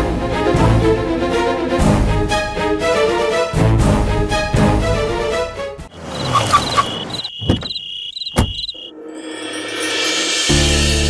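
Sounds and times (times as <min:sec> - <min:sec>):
orchestral string music: 0:00.0 - 0:05.9
crickets chirping: 0:05.9 - 0:08.9
sharp knocks: 0:07.4 - 0:08.7.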